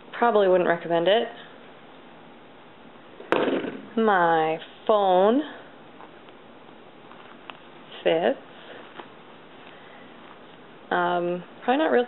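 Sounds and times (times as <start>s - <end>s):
rustling noise: 7.0s - 10.8s.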